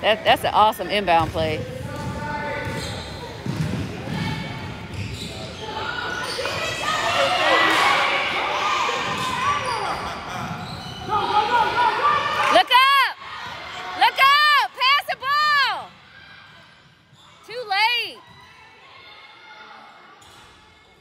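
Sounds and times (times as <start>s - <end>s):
players and spectators shouting: 5.5s - 16.6s, 17.4s - 20.1s.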